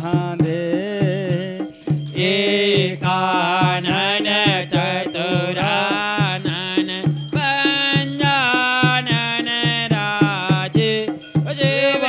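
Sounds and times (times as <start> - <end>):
instrumental accompaniment: 0.0 - 12.0
percussion strokes: 0.0 - 12.0
person singing a hymn: 0.0 - 12.0.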